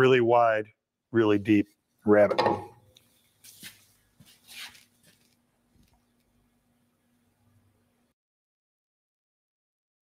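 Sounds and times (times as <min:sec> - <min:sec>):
faint steady hum: 0:01.2 - 0:08.2
scuffing rustle: 0:03.1 - 0:05.4.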